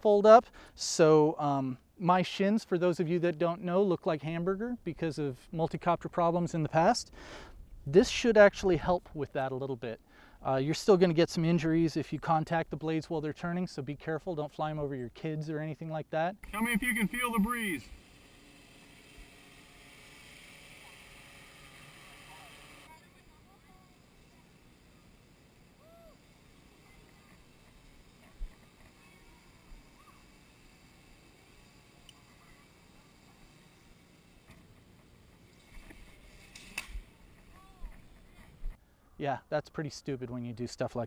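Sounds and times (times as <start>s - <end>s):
high motor hum: 16.4s - 38.8s
faint distant voices: 20.6s - 35.0s.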